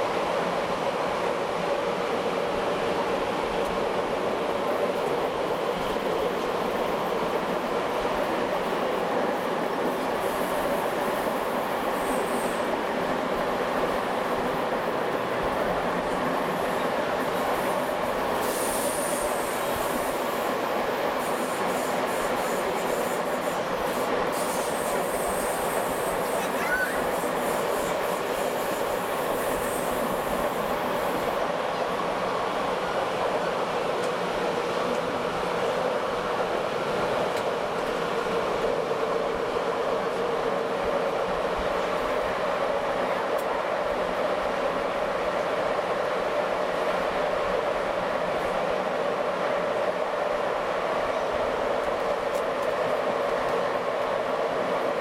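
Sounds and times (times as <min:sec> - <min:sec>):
train rumbling along track: 0:00.0 - 0:55.0
train wheel squeal: 0:11.8 - 0:12.8, 0:16.4 - 0:20.4, 0:21.1 - 0:31.4.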